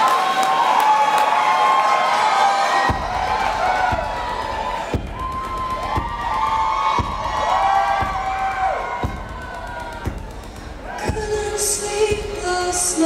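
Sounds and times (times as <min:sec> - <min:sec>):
audience cheering: 0:00.0 - 0:13.0
low drum thump: 0:02.8 - 0:13.0.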